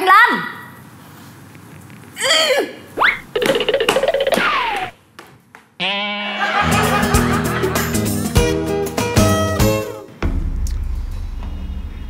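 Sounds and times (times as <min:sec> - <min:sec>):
comedy falling pitch effect: 0:03.0 - 0:04.9.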